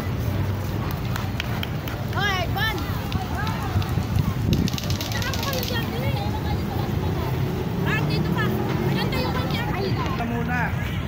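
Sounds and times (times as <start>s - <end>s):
wind rumbling on microphone: 0.0s - 10.2s
distant crowd voices: 0.0s - 11.0s
footstep-like clicks: 0.8s - 6.1s.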